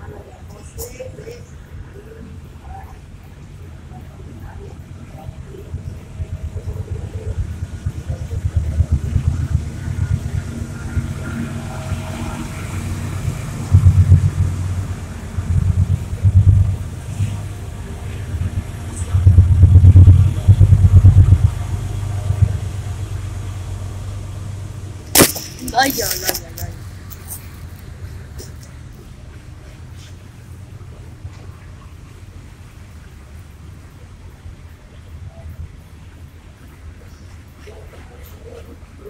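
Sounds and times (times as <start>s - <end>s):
street traffic rumble: 0.0s - 39.0s
motorcycle passing: 6.2s - 28.7s.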